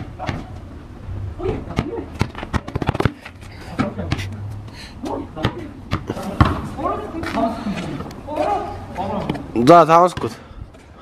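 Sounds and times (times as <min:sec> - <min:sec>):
voices: 0:00.0 - 0:10.6
basketball bouncing on hard court: 0:01.7 - 0:04.2, 0:05.4 - 0:06.7.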